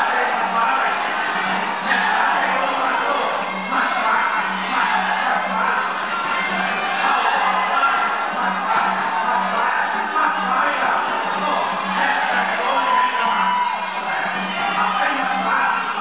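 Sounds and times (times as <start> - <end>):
crowd cheering and shouting: 0.0 - 16.0.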